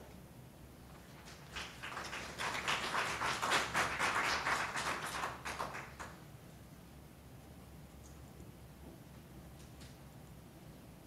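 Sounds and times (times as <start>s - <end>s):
small audience applauding: 1.0s - 6.2s.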